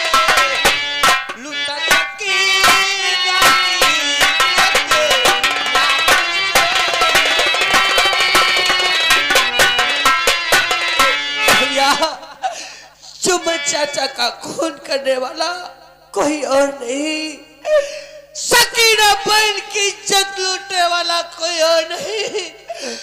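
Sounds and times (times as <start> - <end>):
man singing into a microphone: 0.0 - 0.7, 1.4 - 7.6, 18.4 - 22.6
fast hand-drum strokes: 0.0 - 12.1
harmonium-like tones: 0.0 - 12.4, 13.1 - 15.4.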